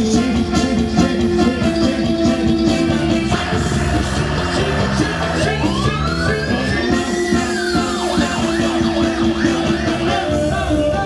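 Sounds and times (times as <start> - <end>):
live band music: 0.0 - 11.0
sliding siren-like tone: 3.5 - 10.7.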